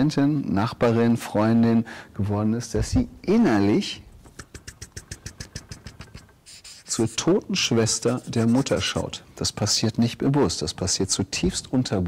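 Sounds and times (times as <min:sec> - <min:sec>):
marker tapping on paper: 0:04.3 - 0:06.8, 0:08.0 - 0:09.1.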